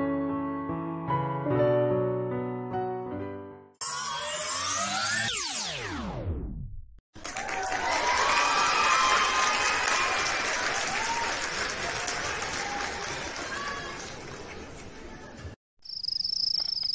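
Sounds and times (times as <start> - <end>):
music with falling sweep: 3.8 - 6.6.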